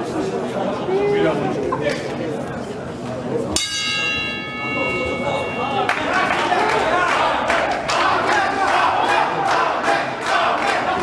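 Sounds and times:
boxing ring bell ringing: 0:03.6 - 0:06.8.

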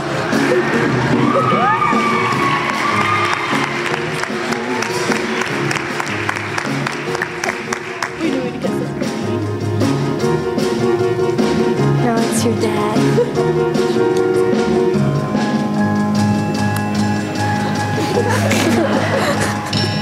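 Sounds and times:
audience cheering and clapping: 0:00.0 - 0:08.8
background music: 0:00.0 - 0:20.0
whoops: 0:00.5 - 0:05.1.

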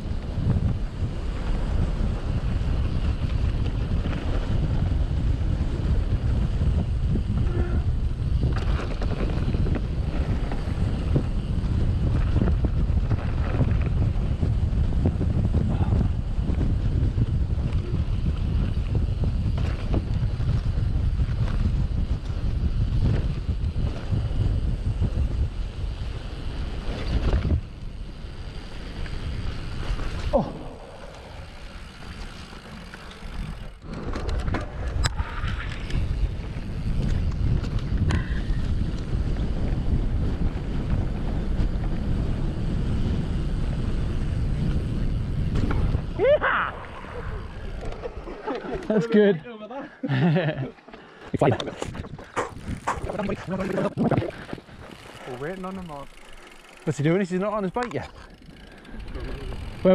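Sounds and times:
wind buffeting microphone: 0:00.0 - 0:49.3, 0:51.2 - 0:59.9.

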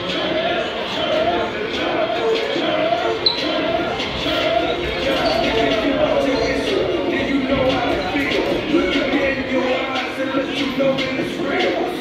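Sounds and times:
voices talking in a hall: 0:00.0 - 0:12.0.

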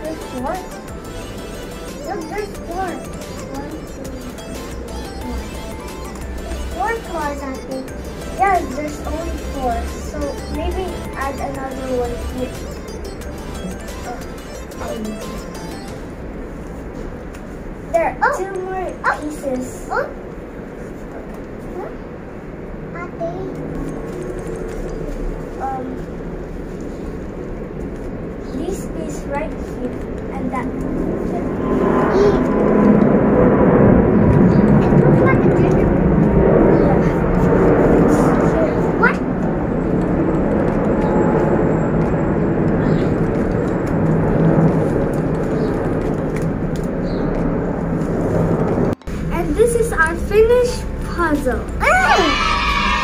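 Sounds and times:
soft voices: 0:00.0 - 0:12.8, 0:13.4 - 0:15.9, 0:49.3 - 0:53.0
engine rumble: 0:00.0 - 0:53.0.

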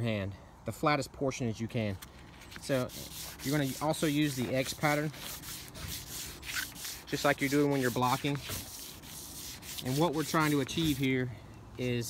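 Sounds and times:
sandpaper rubbing back and forth: 0:02.6 - 0:11.2.

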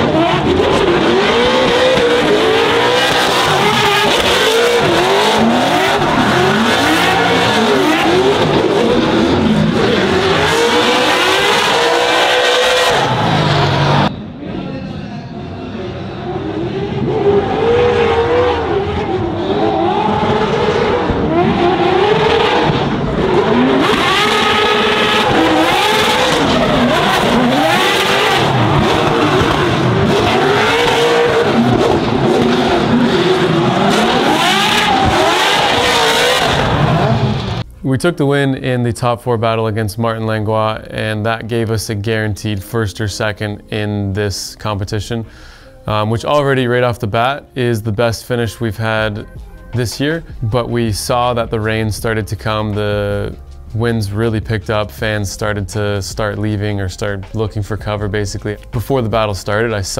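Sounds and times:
car engines revving hard: 0:00.0 - 0:14.1, 0:15.6 - 0:37.7.

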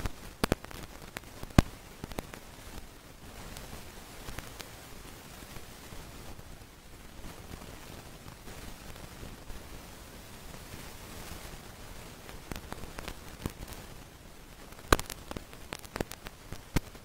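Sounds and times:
faint hiss: 0:00.0 - 0:17.0.

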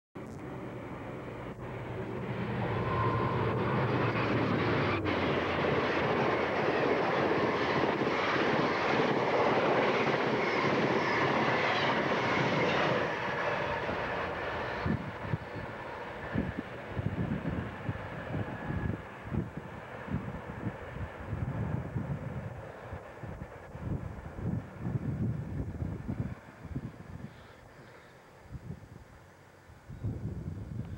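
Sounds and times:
passenger train passing: 0:00.2 - 0:29.9.

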